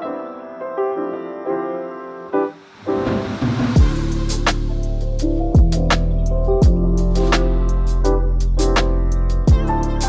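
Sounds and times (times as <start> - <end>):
piano music: 0.0 - 10.0.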